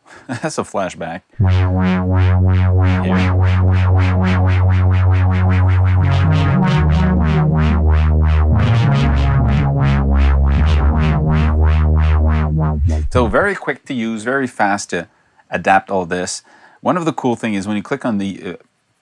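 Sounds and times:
pulsing synthesizer bass notes: 0:01.4 - 0:13.5.

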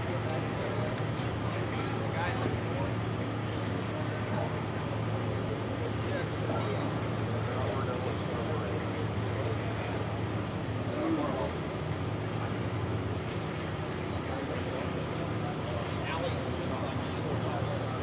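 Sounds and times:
group chatter outdoors: 0:00.0 - 0:18.0.

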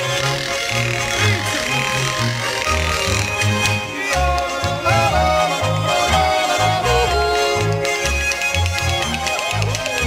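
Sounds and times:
wooden clappers rattling: 0:00.0 - 0:04.6
button accordions: 0:00.0 - 0:10.0
double bass line: 0:00.0 - 0:10.0.

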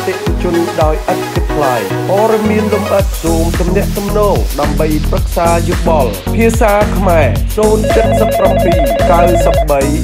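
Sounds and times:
electronic telephone ring: 0:07.8 - 0:09.8.

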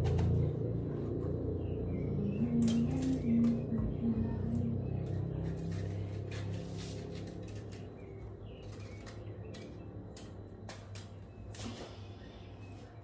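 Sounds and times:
knife cutting a pepper: 0:05.4 - 0:11.1.

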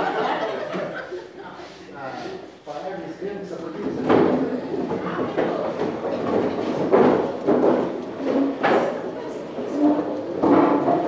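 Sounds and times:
people chattering: 0:00.0 - 0:11.0
sharp knocks or bumps: 0:03.8 - 0:11.0.

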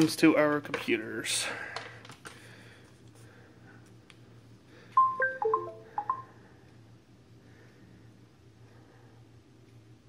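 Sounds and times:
electronic notification chime: 0:05.0 - 0:06.2.

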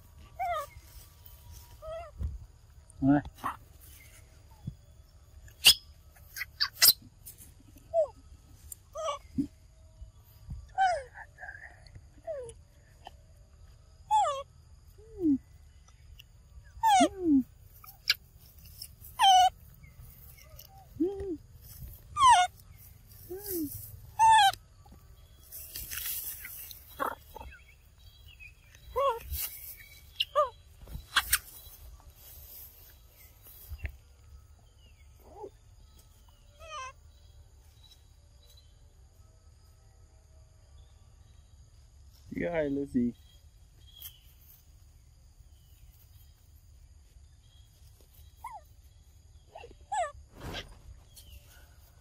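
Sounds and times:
monkeys squealing and whimpering: 0:05.6 - 0:07.1, 0:08.9 - 0:09.6, 0:14.1 - 0:14.5, 0:16.8 - 0:18.2, 0:19.0 - 0:19.6, 0:22.0 - 0:24.6, 0:26.3 - 0:27.6, 0:28.8 - 0:31.6, 0:36.6 - 0:37.0.

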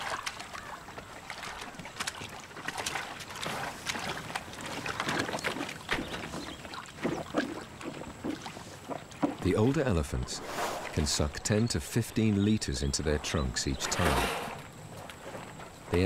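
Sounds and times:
sharp splashes and drips: 0:00.0 - 0:09.8
water sloshing and splashing: 0:00.0 - 0:11.2.

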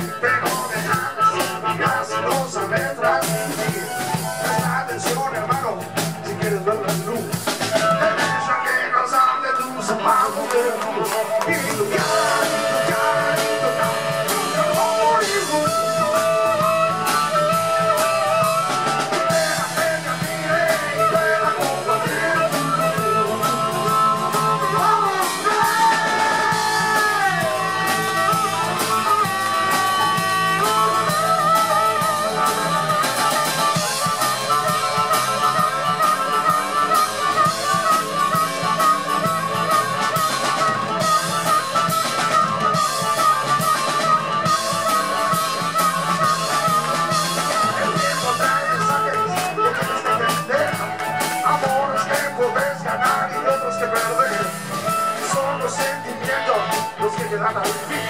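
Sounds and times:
drum kit: 0:00.0 - 0:08.8, 0:09.6 - 0:58.0
amplified harmonica bending notes: 0:00.0 - 0:58.0
electric guitar: 0:00.0 - 0:58.0.

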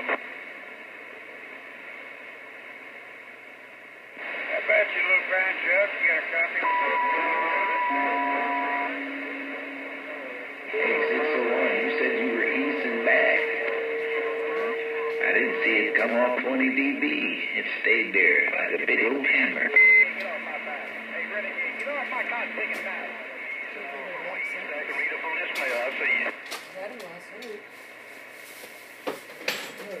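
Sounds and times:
radio static hiss: 0:00.0 - 0:30.0
faint voice over radio: 0:04.2 - 0:26.3
sharp radio clicks: 0:18.4 - 0:23.7, 0:24.8 - 0:27.6.

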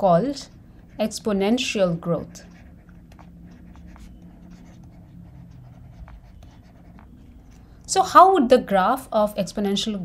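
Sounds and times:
stylus scratching on tablet: 0:00.0 - 0:08.4
steady low hum: 0:00.0 - 0:10.0.

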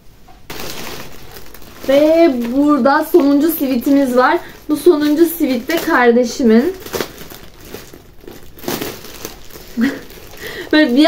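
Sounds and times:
plastic bag crinkling: 0:00.4 - 0:11.0.

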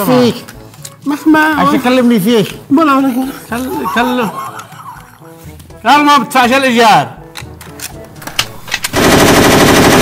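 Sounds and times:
rifle automatic fire: 0:08.8 - 0:10.0.

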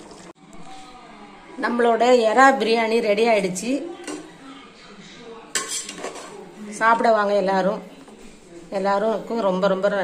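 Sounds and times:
ladle scraping metal pot: 0:05.5 - 0:07.1.

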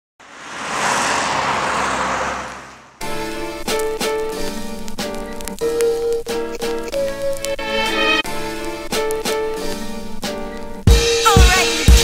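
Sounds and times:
steady rushing noise: 0:00.2 - 0:03.1.

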